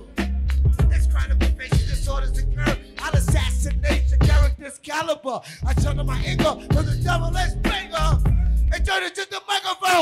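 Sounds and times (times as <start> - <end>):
rapping over a beat: 0.0 - 10.0.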